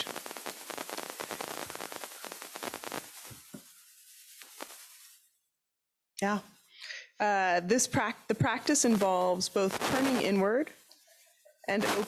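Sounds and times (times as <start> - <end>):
crackling microphone static: 0.0 - 5.3, 6.2 - 12.0.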